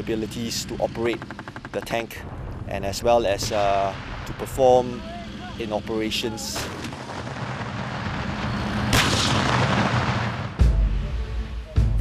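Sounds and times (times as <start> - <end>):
tank gun firing with rolling echo: 0.0 - 10.6
steady low rumble: 0.0 - 12.0.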